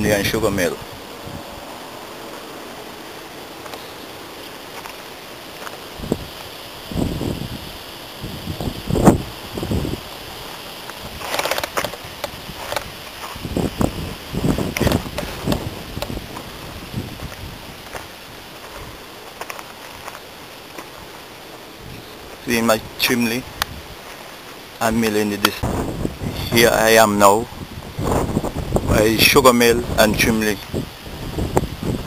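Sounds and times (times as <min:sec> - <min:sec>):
steady outdoor hiss: 0:00.0 - 0:32.0
rustling and bumps from camera: 0:10.9 - 0:20.9.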